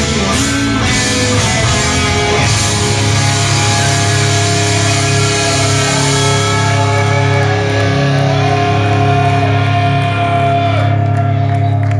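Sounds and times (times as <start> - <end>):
heavy metal band playing: 0.0 - 11.9.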